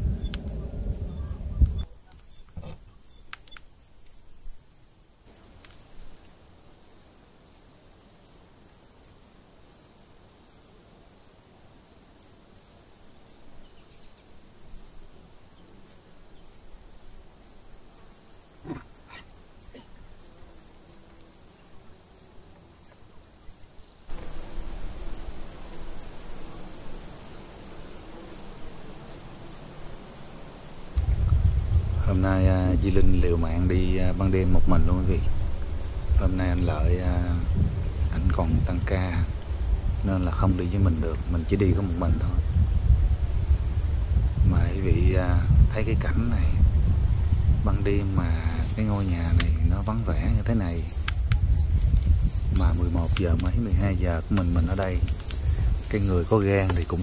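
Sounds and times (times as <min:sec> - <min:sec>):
handling noise rumble: 0:00.0 - 0:01.9, 0:31.0 - 0:57.0
crickets chirping: 0:00.0 - 0:57.0
high insect drone: 0:00.0 - 0:57.0
faint click: 0:00.3 - 0:00.5, 0:03.3 - 0:04.2, 0:05.6 - 0:05.8.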